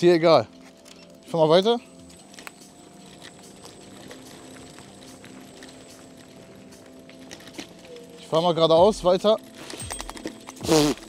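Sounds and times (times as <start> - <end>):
scooter tyres rolling on dirt: 0.0 - 11.0.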